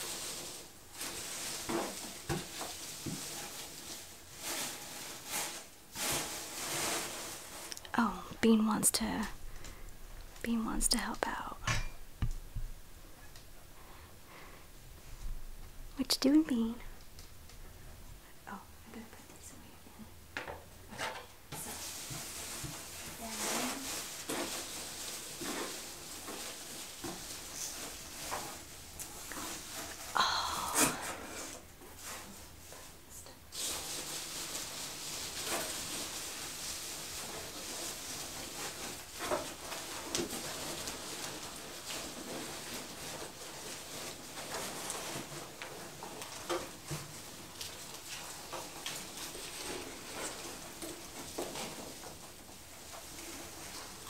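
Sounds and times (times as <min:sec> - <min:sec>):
packing material rustling: 0:00.0 - 0:08.2, 0:21.6 - 0:30.2, 0:33.5 - 0:54.0.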